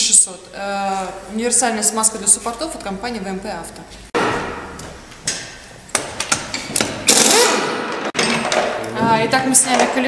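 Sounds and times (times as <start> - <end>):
impact wrench hammering: 4.2 - 8.8
impact wrench clicks: 5.3 - 8.7.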